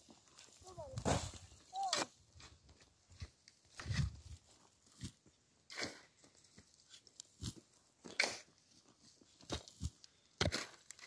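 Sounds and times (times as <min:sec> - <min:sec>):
shovel scraping stony soil: 0:00.0 - 0:11.0.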